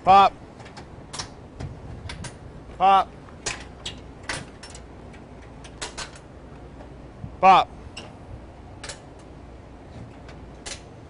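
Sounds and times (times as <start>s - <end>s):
steady low rumble: 0.0s - 11.0s
metallic clicks and knocks of latches: 0.6s - 1.4s, 3.4s - 6.3s, 8.8s - 9.4s, 10.2s - 11.0s.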